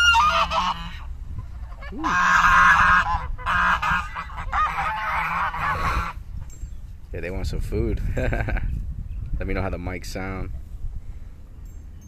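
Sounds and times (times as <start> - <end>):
geese honking: 0.0 - 6.2.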